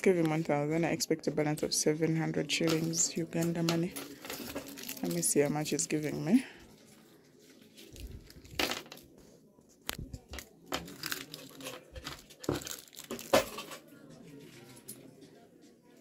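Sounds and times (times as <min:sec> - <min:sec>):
rustling and crinkling: 0:02.7 - 0:14.9.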